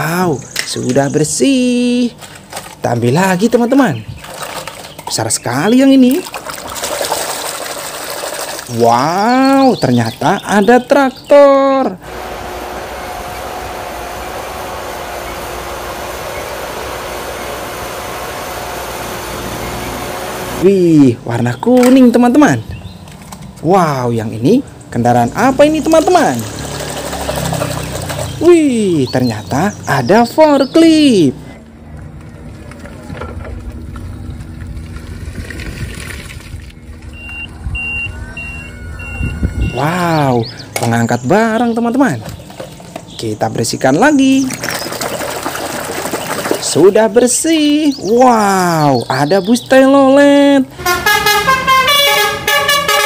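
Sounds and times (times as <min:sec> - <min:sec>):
forklift driving: 0:11.9 - 0:21.2, 0:25.2 - 0:35.4, 0:36.4 - 0:53.0
tractor engine running: 0:12.0 - 0:20.8, 0:24.7 - 0:31.0
high warning beeps: 0:37.1 - 0:40.0.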